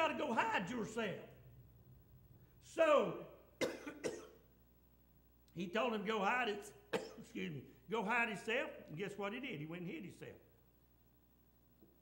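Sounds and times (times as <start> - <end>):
man coughing: 3.6 - 4.5, 6.9 - 7.4.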